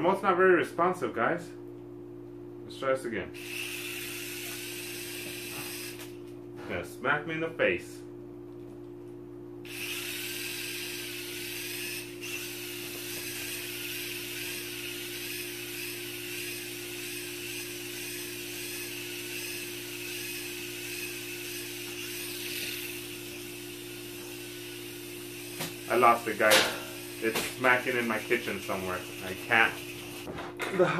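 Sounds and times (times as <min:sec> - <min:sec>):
toy drone propellers whirring: 0:03.4 - 0:06.2, 0:09.7 - 0:26.4, 0:27.0 - 0:30.3.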